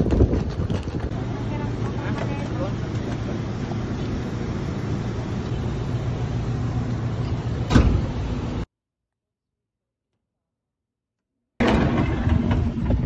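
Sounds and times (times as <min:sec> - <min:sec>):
road traffic rumble: 0:00.0 - 0:08.7
van engine idling: 0:01.0 - 0:08.6
loud thump: 0:07.7 - 0:08.2.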